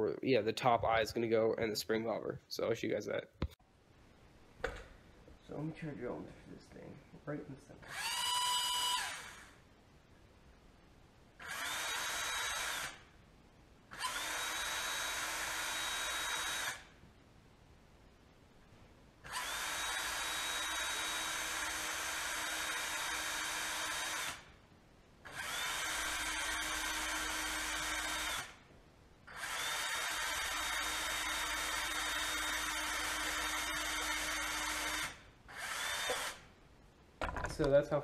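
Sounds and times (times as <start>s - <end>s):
cordless drill boring wood: 7.8s - 9.6s, 11.4s - 13.1s, 13.9s - 16.9s, 19.2s - 24.5s, 25.2s - 28.6s, 29.3s - 36.5s.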